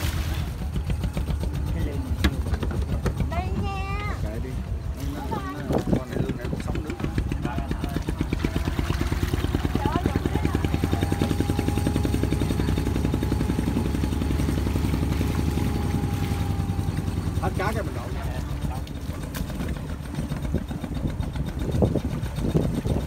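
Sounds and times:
boat engine chugging: 0.0s - 23.0s
voices: 0.5s - 21.6s.

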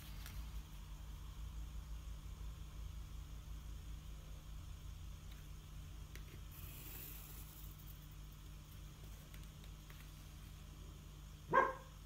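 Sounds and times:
faint low hum: 0.0s - 12.0s
bark-like animal call: 11.5s - 11.9s.

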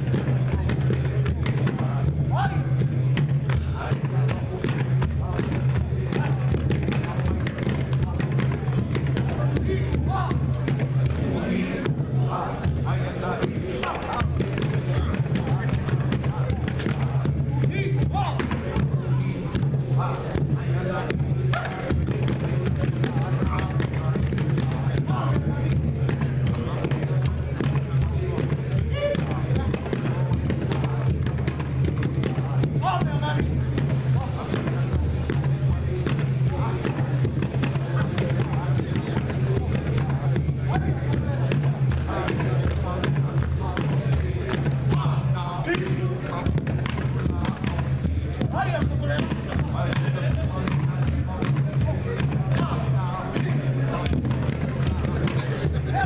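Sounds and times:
gourd drum beat: 0.0s - 56.0s
man chanting: 0.0s - 56.0s.

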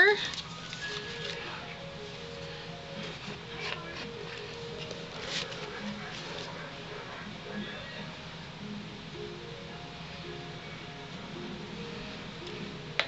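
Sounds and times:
faint background music: 0.0s - 13.0s
paper rustling and tapping: 0.2s - 1.5s, 2.4s - 6.6s.

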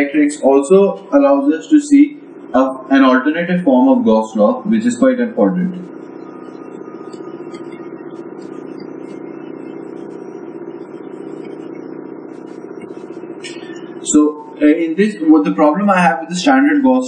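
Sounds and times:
steady hum of held tones: 0.0s - 17.0s.

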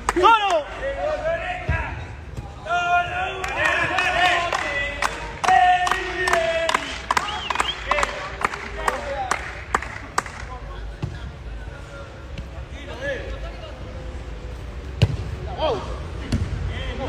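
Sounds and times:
spectators shouting: 2.6s - 8.3s.

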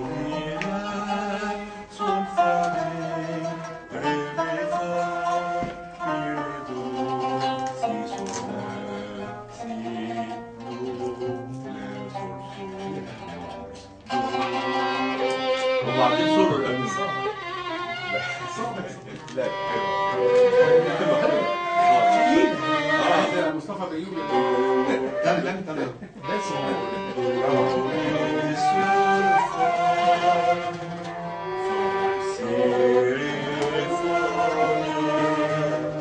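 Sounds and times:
plucked zither melody: 0.0s - 17.0s.

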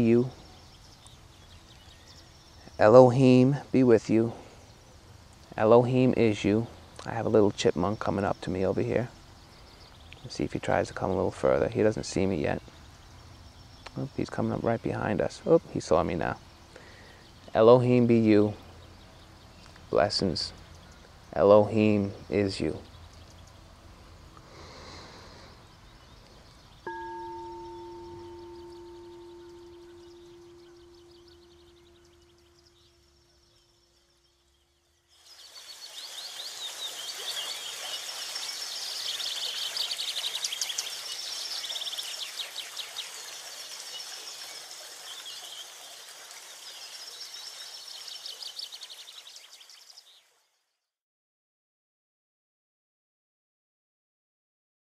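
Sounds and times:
crystal singing bowl ringing: 26.8s - 34.4s
high chirps and chime tinkles: 26.8s - 35.5s.

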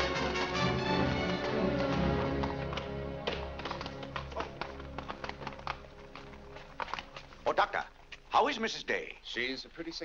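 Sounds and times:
film score music: 0.0s - 9.7s
horse hooves clip-clopping on street: 1.2s - 8.8s.

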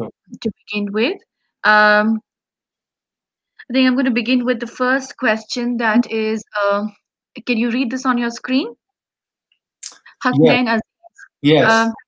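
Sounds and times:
person speaking a word: 9.8s - 10.7s, 11.4s - 12.0s.

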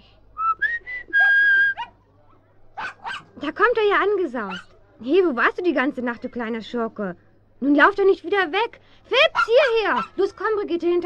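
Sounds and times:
person whistling for a dog: 0.4s - 1.9s
dog barking: 2.8s - 3.4s, 4.5s - 4.7s, 9.2s - 10.3s.

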